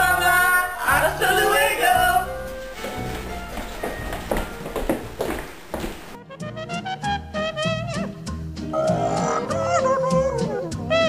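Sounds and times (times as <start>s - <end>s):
footsteps on hardwood floor: 1.2s - 6.2s.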